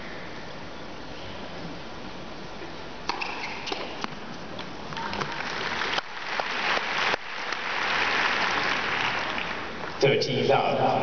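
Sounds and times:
tennis racket hitting ball: 3.1 - 4.2
crowd applauding: 5.1 - 9.9.

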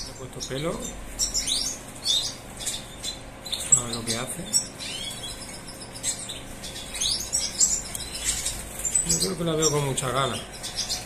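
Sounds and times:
goldfinches twittering: 0.0 - 11.0.

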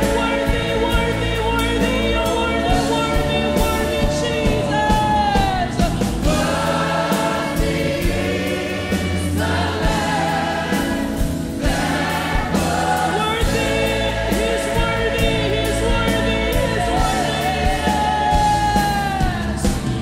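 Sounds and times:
bass notes: 0.0 - 20.0
choir singing: 0.0 - 20.0
drum beat: 0.0 - 20.0.

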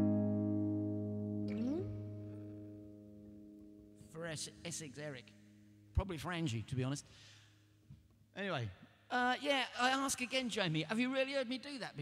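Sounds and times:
acoustic guitar chord ringing: 0.0 - 4.1.

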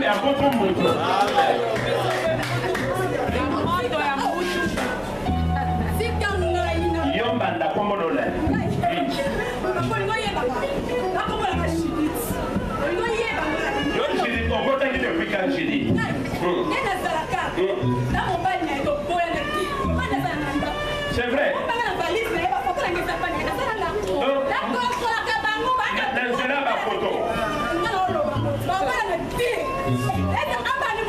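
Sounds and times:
people talking and calling out: 0.0 - 31.0.

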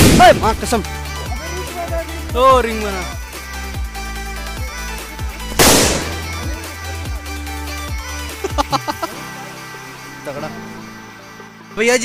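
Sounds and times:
firecracker bang: 0.0 - 0.4, 5.6 - 6.4
electronic music with beat: 0.6 - 9.2.

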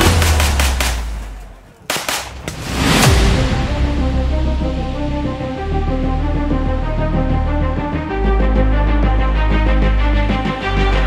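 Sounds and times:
rifle gunfire: 0.0 - 2.6.

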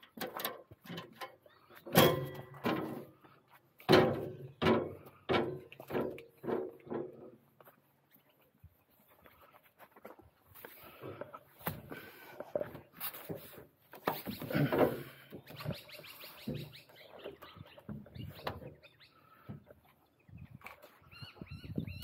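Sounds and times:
boots on steel ladder: 1.8 - 7.7
bird calls: 14.0 - 22.0.

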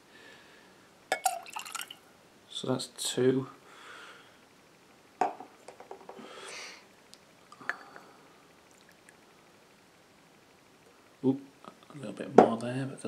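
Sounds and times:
liquid pouring: 1.2 - 2.0
glass knocking: 5.2 - 6.2.

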